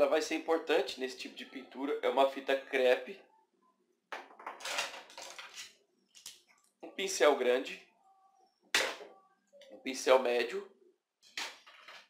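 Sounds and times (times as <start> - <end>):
objects clattering on tabletop: 4.1 - 6.4, 11.2 - 12.0.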